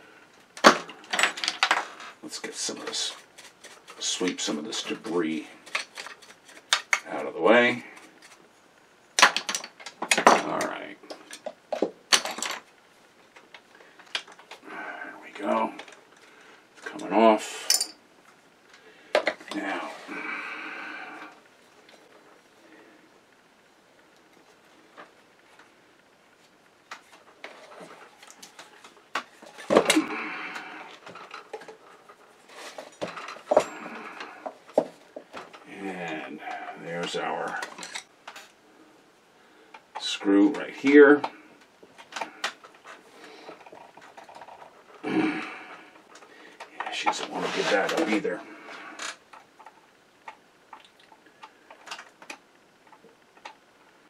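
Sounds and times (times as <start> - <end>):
metal tools clinking on workbench: 17.6 - 18.0.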